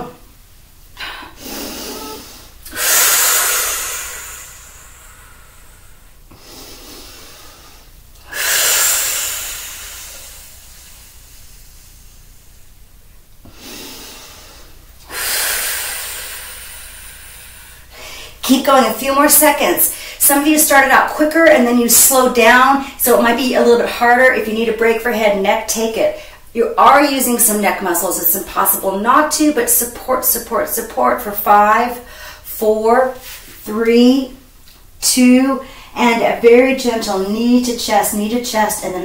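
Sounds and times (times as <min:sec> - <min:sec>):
woman breathing deeply: 0:01.0 - 0:12.7, 0:13.4 - 0:18.4, 0:19.9 - 0:20.2, 0:32.0 - 0:32.5, 0:35.6 - 0:36.0.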